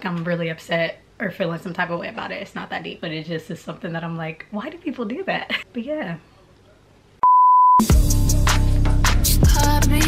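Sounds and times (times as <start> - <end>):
steady pure beep tone: 7.2 - 7.8
music: 7.8 - 10.0.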